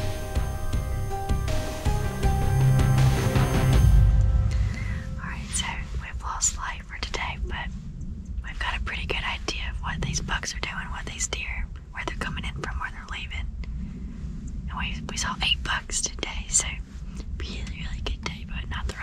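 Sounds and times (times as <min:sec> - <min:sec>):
low steady rumble: 0:00.0 - 0:19.0
woman whispering: 0:05.2 - 0:07.7, 0:08.4 - 0:13.5, 0:14.7 - 0:16.8, 0:17.4 - 0:19.0.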